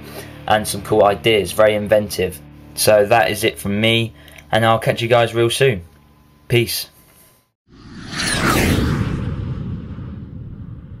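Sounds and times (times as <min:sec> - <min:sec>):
whoosh sound effect: 0:07.7 - 0:11.0.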